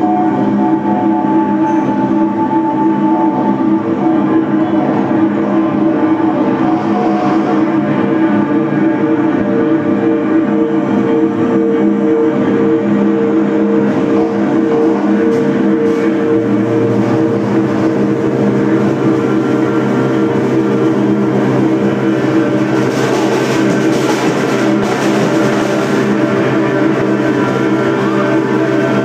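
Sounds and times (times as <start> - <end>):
electric guitar drone chord: 0.0 - 29.0
low bass tone: 0.0 - 29.0.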